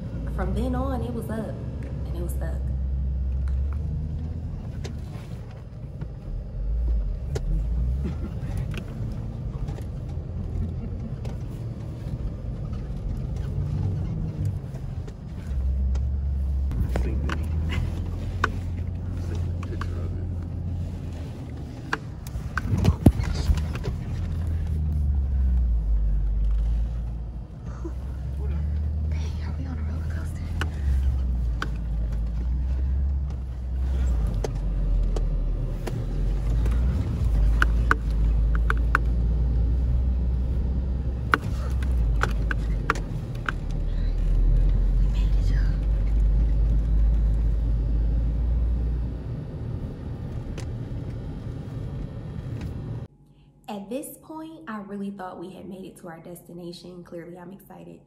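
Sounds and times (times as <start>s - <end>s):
engine rumble from inside car: 0.0s - 53.2s
vehicle knocks and rattles: 21.4s - 25.6s.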